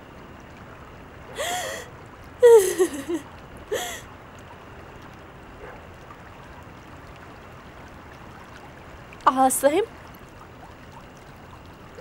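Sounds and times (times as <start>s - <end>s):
woman sobbing gasp: 1.4s - 4.0s.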